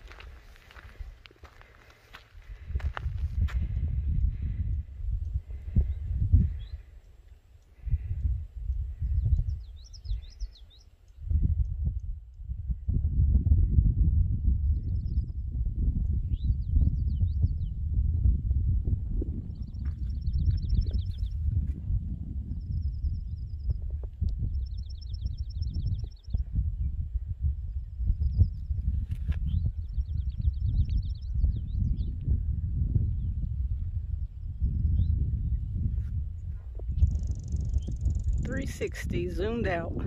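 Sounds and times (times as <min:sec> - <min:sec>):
wind buffeting microphone: 0:00.0 - 0:40.0
songbirds singing: 0:03.5 - 0:12.4, 0:16.2 - 0:17.8, 0:19.4 - 0:21.6, 0:22.5 - 0:35.8, 0:36.4 - 0:39.9.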